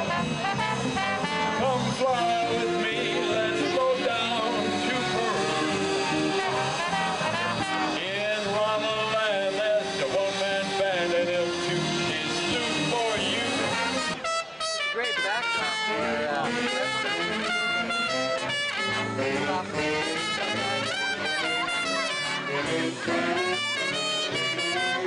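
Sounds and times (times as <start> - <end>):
big band swing music: 0.0 - 25.0.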